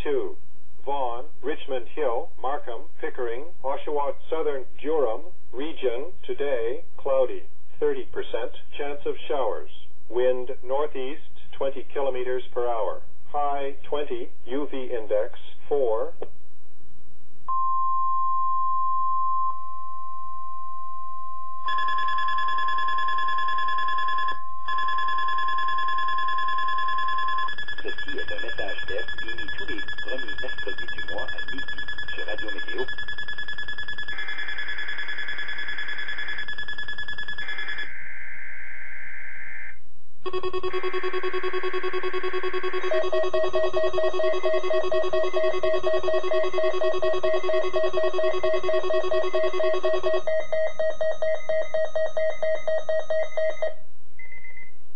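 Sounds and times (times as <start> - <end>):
shrill electronic tones: 18.2 - 53.8
steady high alert tone: 21.6 - 53.8
warbling data bursts: 21.7 - 38.7, 39.4 - 53.1
fast-pulsing alarm beep: 21.7 - 54.7.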